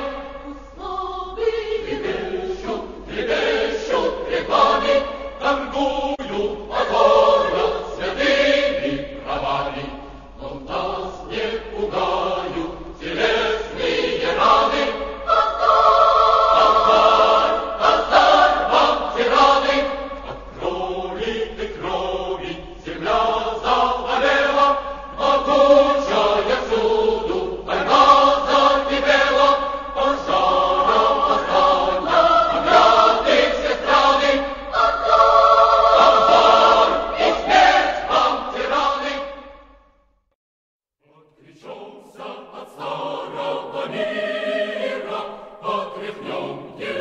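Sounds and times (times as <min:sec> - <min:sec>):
choir singing: 0:00.0 - 0:39.8, 0:41.0 - 0:47.0.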